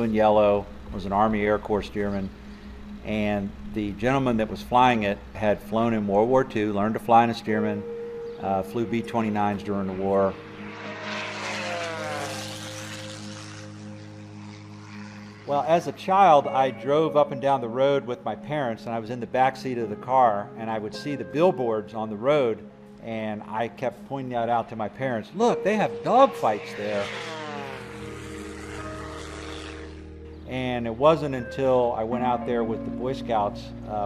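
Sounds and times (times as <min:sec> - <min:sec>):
propeller airplane passing: 0:00.0 - 0:19.8, 0:22.3 - 0:34.0
music with sustained notes: 0:00.0 - 0:34.0.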